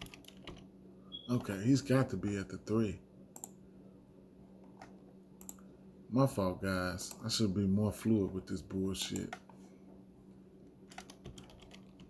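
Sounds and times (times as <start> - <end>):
keyboard typing: 0.0 - 0.6, 10.9 - 12.0.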